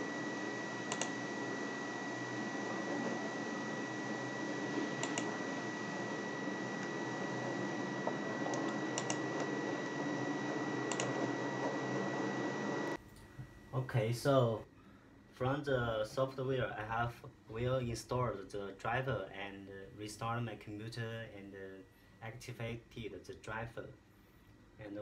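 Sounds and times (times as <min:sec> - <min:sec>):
high steady whine: 0:00.0 - 0:14.7
laptop clicks: 0:00.9 - 0:01.2, 0:05.0 - 0:05.4, 0:08.0 - 0:09.5, 0:10.9 - 0:11.2.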